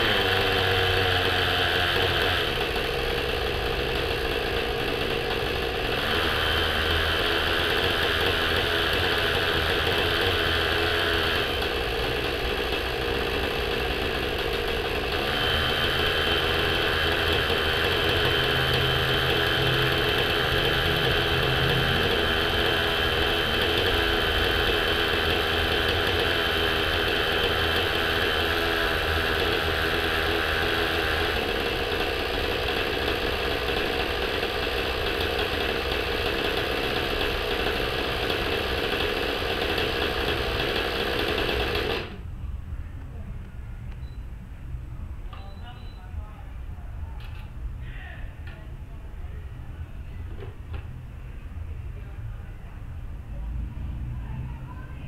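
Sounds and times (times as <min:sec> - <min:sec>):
model helicopter engine running: 0:00.0 - 0:42.2.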